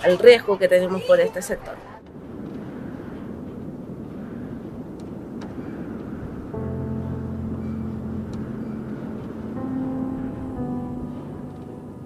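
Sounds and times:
low outdoor rumble: 2.0 - 12.0.

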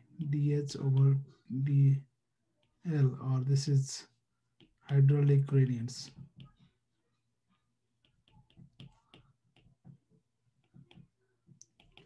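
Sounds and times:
stylus tapping on tablet screen: 4.5 - 6.8, 7.9 - 12.0.

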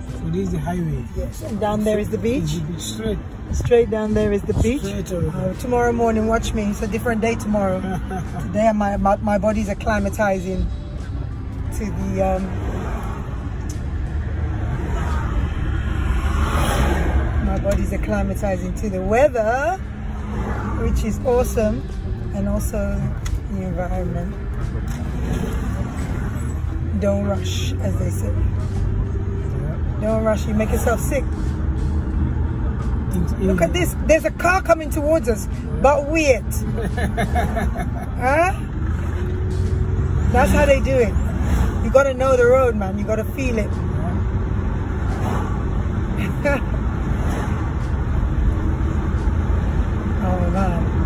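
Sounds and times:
car engine rumble: 0.0 - 51.0
tyres on road: 0.0 - 51.0.

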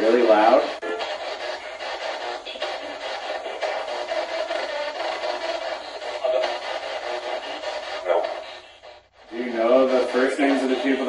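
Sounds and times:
radio static with broadcast scraps: 0.0 - 11.0.

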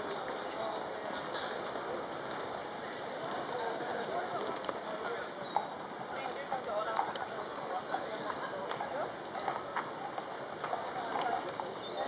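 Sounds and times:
murmur of voices: 0.0 - 12.0
horse hooves clopping on tarmac: 3.6 - 12.0.

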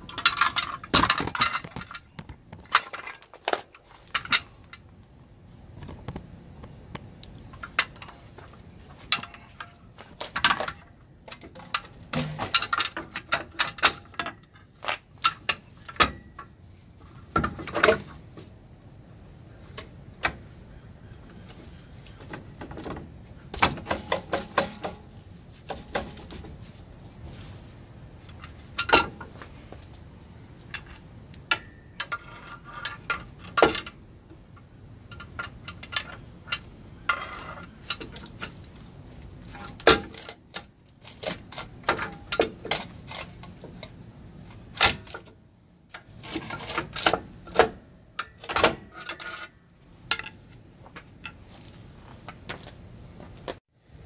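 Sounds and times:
metallic clanks and scrapes: 0.0 - 4.9, 7.5 - 18.5, 21.3 - 34.0, 34.6 - 45.3, 45.9 - 52.7.

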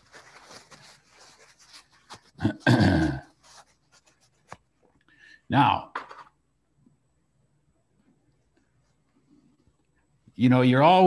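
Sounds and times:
tissue rubbing on paper: 0.0 - 2.6, 3.2 - 4.9.

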